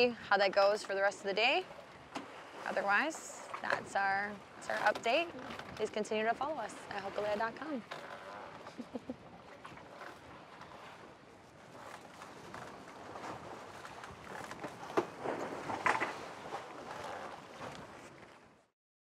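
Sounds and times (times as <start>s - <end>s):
water splashing against hull: 0.0s - 18.7s
wind: 0.0s - 18.7s.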